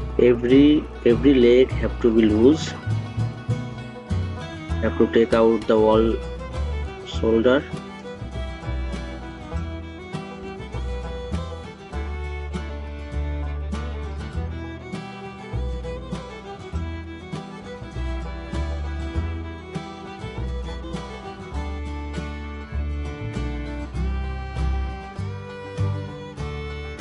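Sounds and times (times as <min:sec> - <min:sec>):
instrumental music with strong bass: 0:00.0 - 0:27.0.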